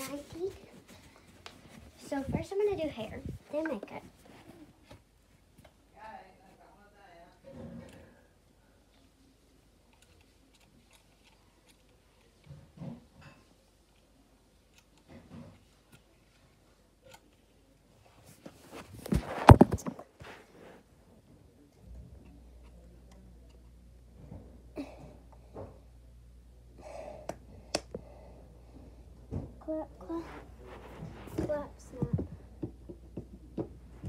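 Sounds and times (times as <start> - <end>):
low steady hum: 0.0 - 34.0
phone handling rustles and knocks: 18.8 - 20.2.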